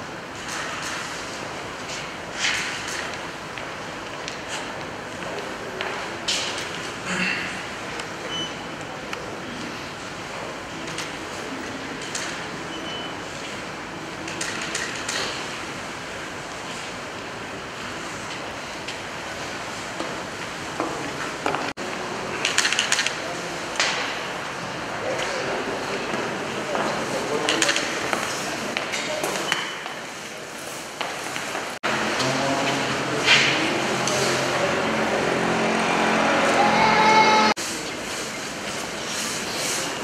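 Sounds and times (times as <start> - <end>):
road traffic rushing: 31.8 - 37.6.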